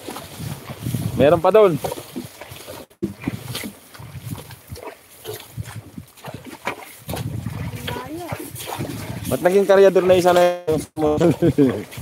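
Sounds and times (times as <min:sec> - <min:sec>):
hooves and sled in mud: 0:00.0 - 0:12.0.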